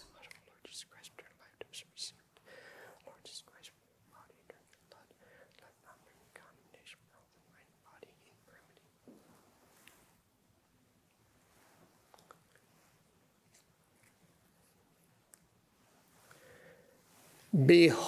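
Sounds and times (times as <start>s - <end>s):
man whispering: 0.0s - 9.0s, 17.5s - 18.0s.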